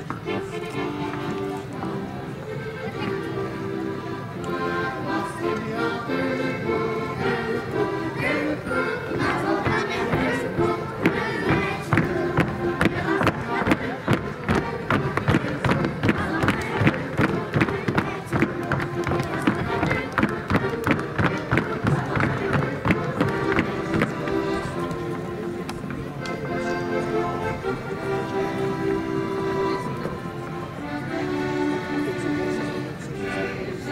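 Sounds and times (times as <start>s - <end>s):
folk dance music: 0.0s - 33.9s.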